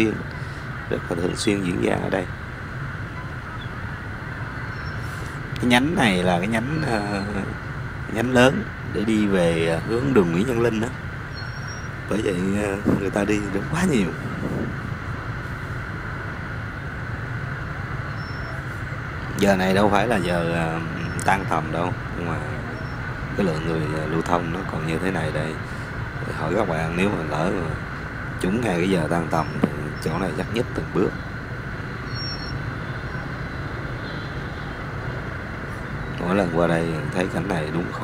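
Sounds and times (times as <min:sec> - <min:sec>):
motorbike and scooter engines idling: 0:00.0 - 0:38.0.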